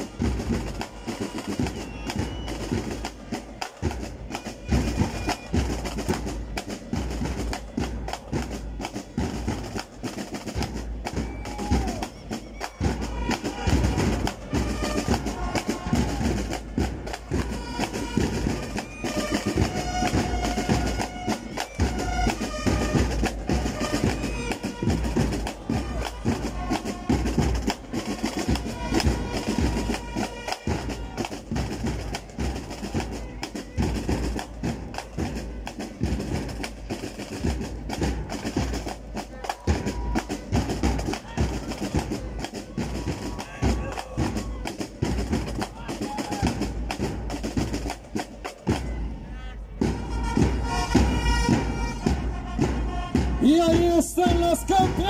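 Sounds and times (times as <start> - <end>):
fast dense drumming: 0.0 - 49.1, 49.8 - 55.0.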